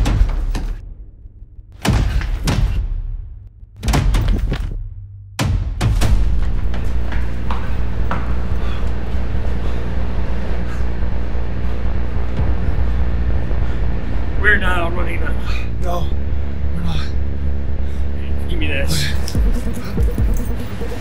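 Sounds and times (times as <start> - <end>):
film score low drone: 0.0 - 21.0
out-of-breath panting: 7.8 - 14.3, 18.9 - 21.0.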